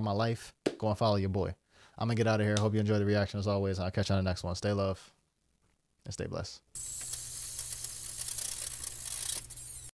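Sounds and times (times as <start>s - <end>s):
faint high sweeping tones: 6.8s - 9.4s
crackling hissy sound effect: 6.8s - 9.9s.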